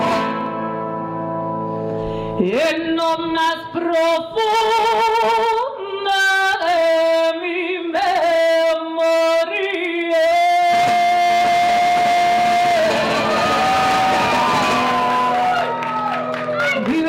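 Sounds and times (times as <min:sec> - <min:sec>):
woman singing: 0:02.4 - 0:13.1, 0:16.6 - 0:17.0.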